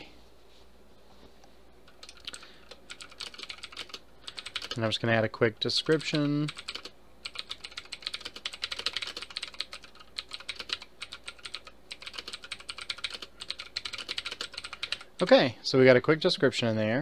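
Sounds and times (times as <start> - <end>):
typing on computer keyboard: 1.9 - 4.9, 5.8 - 15.1.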